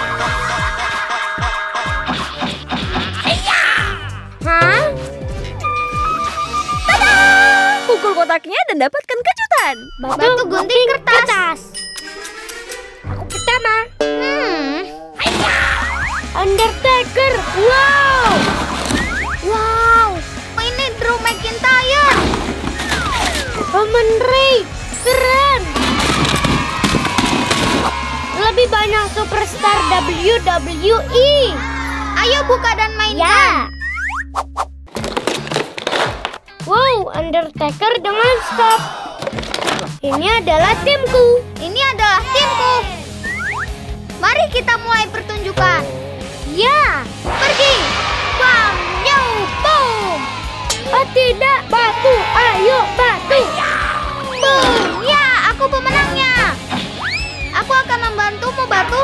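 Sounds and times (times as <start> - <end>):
upbeat background music: 0.0 - 34.7, 36.2 - 59.0.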